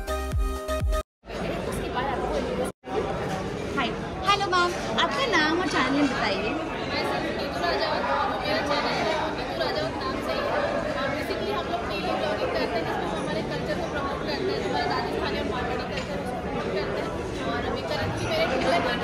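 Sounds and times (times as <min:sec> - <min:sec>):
chatter of voices: 0:01.2 - 0:19.0.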